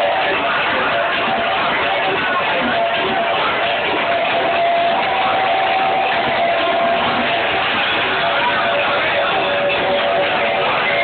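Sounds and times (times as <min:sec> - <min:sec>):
crowd noise at a live gig: 0:00.0 - 0:11.0
steady held tone: 0:00.0 - 0:11.0.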